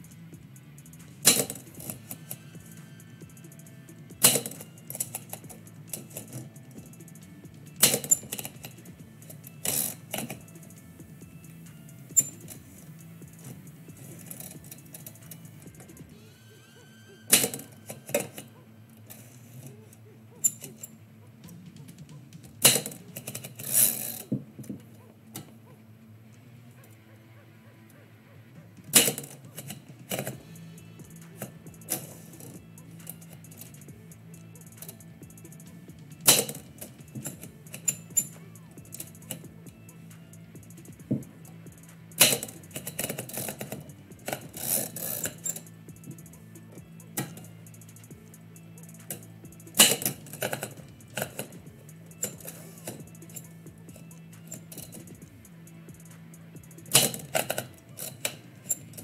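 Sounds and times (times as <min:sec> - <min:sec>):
quiet background music: 0:00.0 - 0:59.0.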